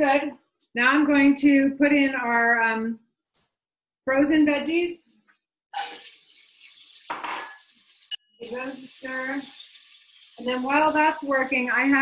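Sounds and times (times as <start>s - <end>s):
kitchenware clinking: 5.8s - 10.7s
vegetables frying in a pan: 5.8s - 12.0s.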